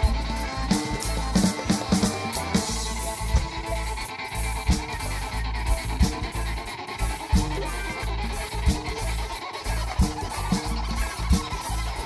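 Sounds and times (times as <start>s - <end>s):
bass line: 0.0s - 12.0s
regular beat: 0.0s - 12.0s
string instruments playing folk music: 0.0s - 12.0s.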